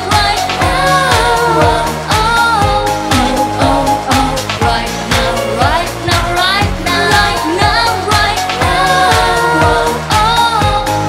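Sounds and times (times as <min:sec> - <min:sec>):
band backing with steady beat: 0:00.0 - 0:11.0
woman singing pop song: 0:00.0 - 0:11.0.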